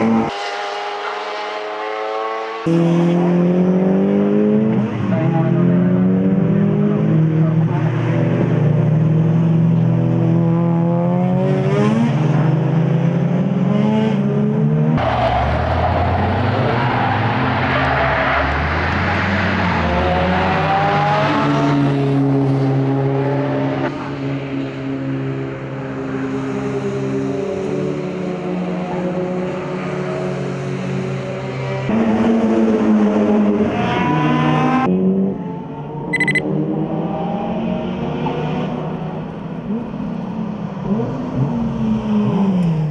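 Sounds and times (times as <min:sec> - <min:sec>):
racing rotary engine revving: 0:00.0 - 0:17.7.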